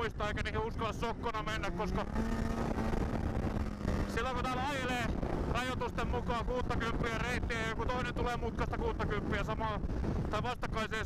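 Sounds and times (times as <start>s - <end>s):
snowmobile engine running: 0.0s - 10.9s.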